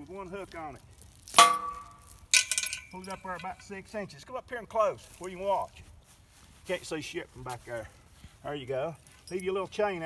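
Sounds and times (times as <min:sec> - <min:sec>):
metal chain clinking: 0:01.4 - 0:03.7, 0:09.1 - 0:09.6.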